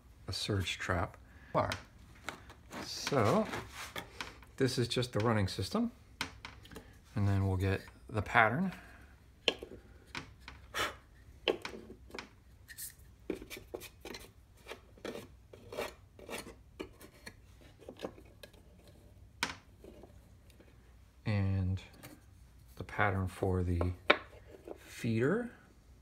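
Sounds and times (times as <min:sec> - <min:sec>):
light scrapes and rubs on wood: 0:02.3 - 0:04.8, 0:10.3 - 0:20.8, 0:23.8 - 0:25.1.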